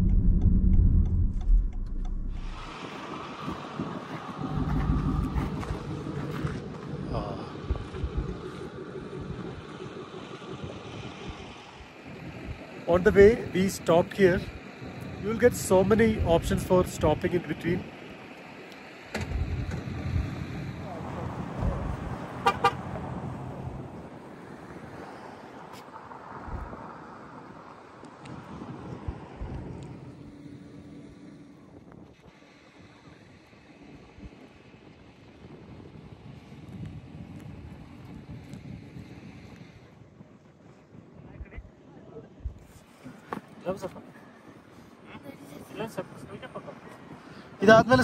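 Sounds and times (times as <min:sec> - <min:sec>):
car traffic passing: 0:00.0 - 0:35.3
short horn toots: 0:22.4 - 0:22.9.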